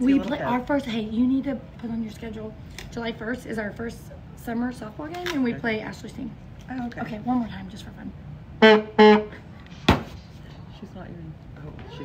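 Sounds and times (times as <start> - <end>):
novelty cup horn honks: 8.6 - 9.4
sharp knock: 9.8 - 10.2.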